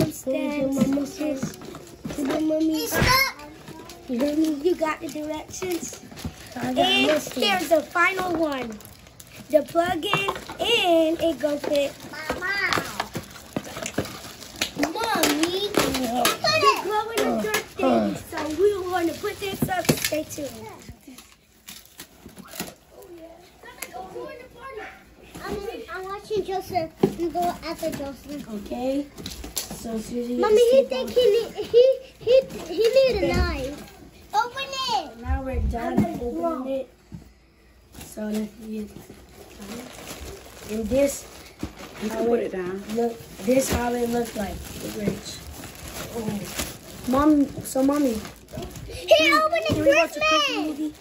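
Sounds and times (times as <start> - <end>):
children talking and exclaiming: 0.0 - 51.0
plastic packaging crinkling: 0.8 - 24.4, 37.9 - 51.0.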